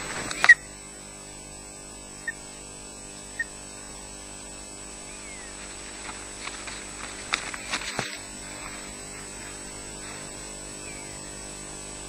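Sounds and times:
electrical hum: 0.0 - 12.0
thin high whine: 0.0 - 12.0
twigs cracking and knocking: 5.5 - 10.3.

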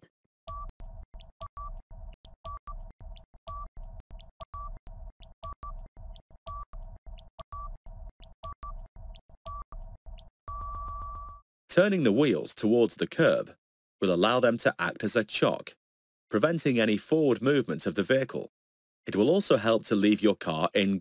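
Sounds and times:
timer beeps: 0.5 - 11.4
timer ticking: 0.5 - 11.4.

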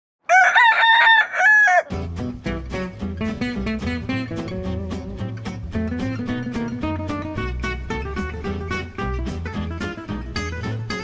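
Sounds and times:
rooster crowing: 0.3 - 2.0
acoustic guitar music: 1.9 - 11.0.

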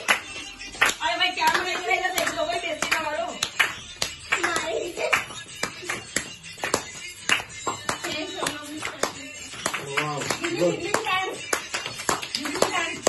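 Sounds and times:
group clapping in time: 0.0 - 13.0.

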